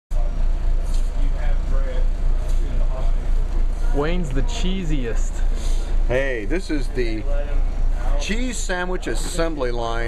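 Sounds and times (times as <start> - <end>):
background chatter: 0.1 - 10.0.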